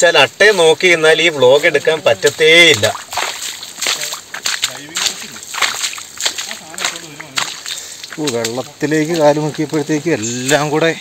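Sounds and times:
footsteps crunching through undergrowth: 0.5 - 11.0.

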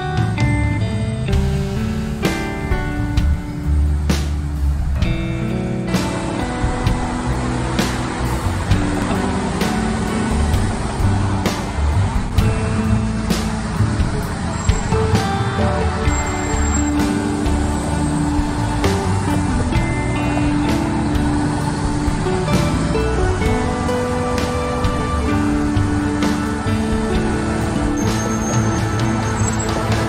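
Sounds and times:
faint road traffic: 0.0 - 30.0
instrumental music with beat: 0.0 - 30.0.

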